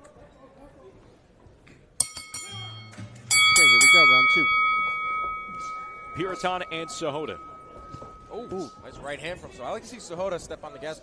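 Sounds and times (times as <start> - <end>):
boxing ring bell: 2.0 - 9.3.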